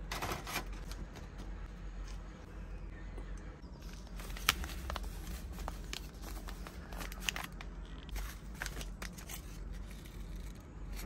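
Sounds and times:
paper packets crinkling: 0:03.8 - 0:10.6.

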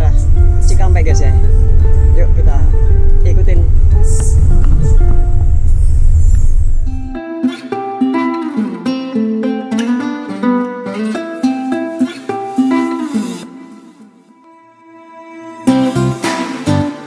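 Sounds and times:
bus cabin rumble: 0:00.0 - 0:07.1
background music: 0:00.0 - 0:17.0
plucked string melody: 0:00.0 - 0:17.0.

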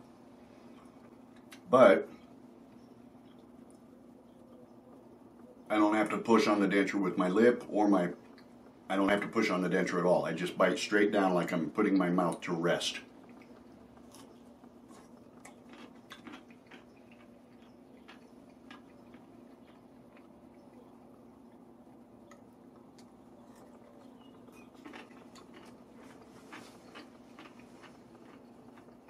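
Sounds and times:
low hum: 0:00.0 - 0:29.0
chewing with crunching: 0:00.5 - 0:06.2, 0:11.6 - 0:29.0.

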